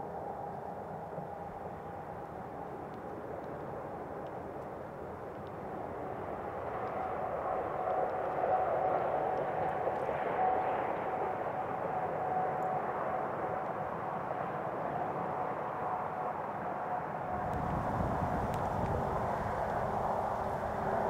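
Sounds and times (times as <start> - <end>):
distant engine drone: 17.3 - 21.0.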